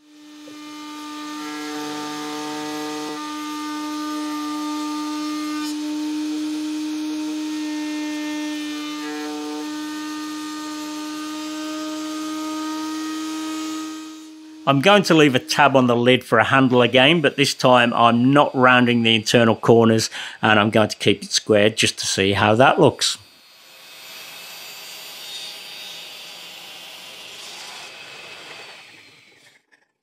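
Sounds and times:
router spinning at high pitch: 0:00.0 - 0:18.8, 0:22.4 - 0:30.0.

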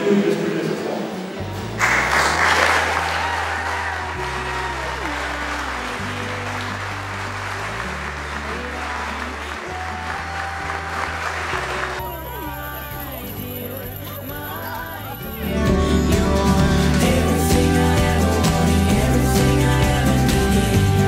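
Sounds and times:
congregation applauding: 0:01.8 - 0:13.8.

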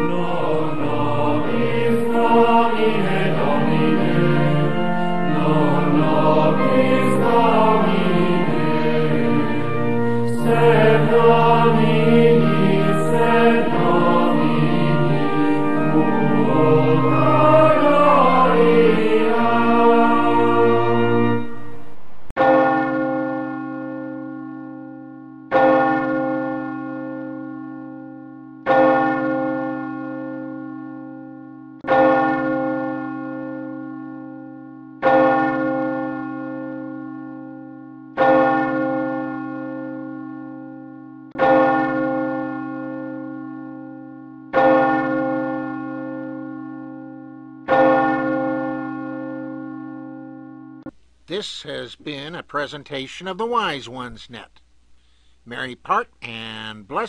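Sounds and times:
church bell tolling: 0:00.0 - 0:50.9.

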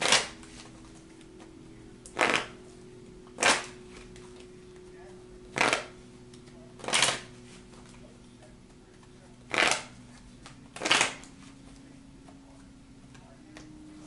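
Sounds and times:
cards being shuffled: 0:00.0 - 0:01.1, 0:02.2 - 0:02.5, 0:06.8 - 0:07.3, 0:09.5 - 0:11.6.

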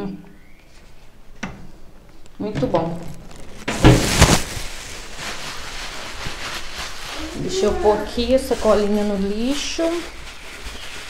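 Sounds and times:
steady rustling: 0:00.7 - 0:11.0.

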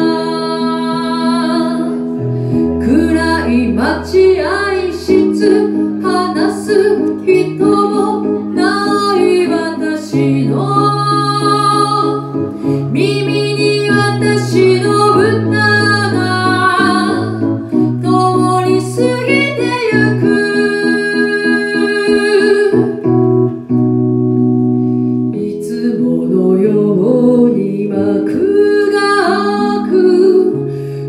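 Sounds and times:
woman singing ballad: 0:00.0 - 0:23.2, 0:25.4 - 0:31.0
electronic keyboard chords: 0:00.0 - 0:31.0.

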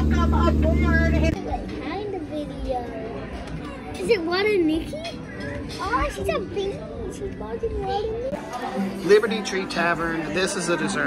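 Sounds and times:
young child talking and playing: 0:01.3 - 0:09.0.

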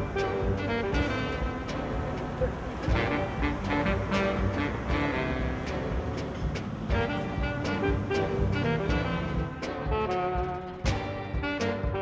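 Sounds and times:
held notes background music: 0:00.0 - 0:12.0
light percussion hits: 0:00.0 - 0:12.0.

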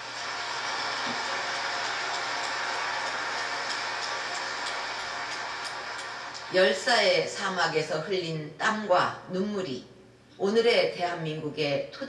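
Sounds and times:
large audience applauding: 0:00.0 - 0:06.8.

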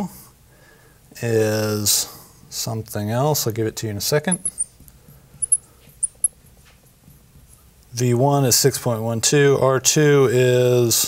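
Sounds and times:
marker squeaking on glass: 0:04.3 - 0:04.8, 0:05.4 - 0:06.4.

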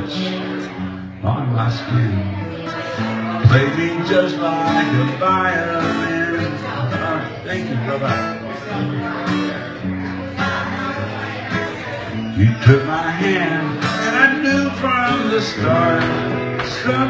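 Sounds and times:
acoustic guitar strumming: 0:00.0 - 0:17.0.

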